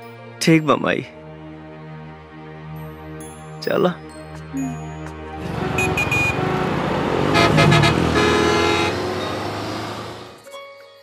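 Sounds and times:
bus and motorbike engines: 0:05.1 - 0:10.4
vehicle horns honking: 0:05.4 - 0:10.0.

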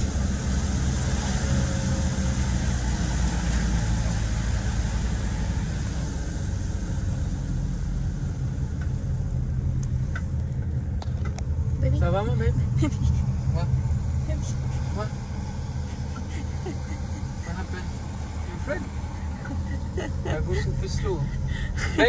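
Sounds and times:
engine and road rumble: 0:00.0 - 0:22.0.

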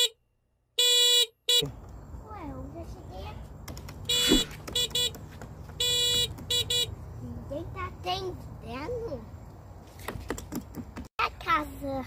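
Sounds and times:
toy electronic horn beeping: 0:00.8 - 0:01.7, 0:04.0 - 0:05.2, 0:05.8 - 0:07.0.

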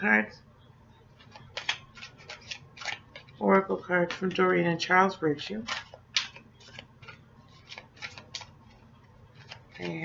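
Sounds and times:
cards being shuffled: 0:01.2 - 0:04.6, 0:05.6 - 0:10.0.

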